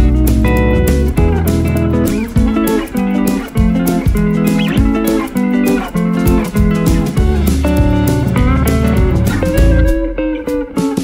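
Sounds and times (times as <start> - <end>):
guitar tune over a beat: 0.0 - 11.0.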